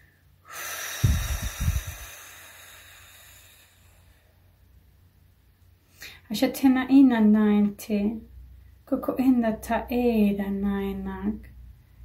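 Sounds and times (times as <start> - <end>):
breath blown out: 0.4 - 4.2
breath buffeting microphone: 0.5 - 4.2.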